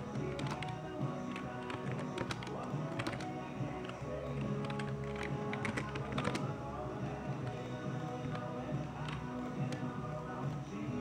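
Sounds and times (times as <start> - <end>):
country music on radio: 0.0 - 11.0.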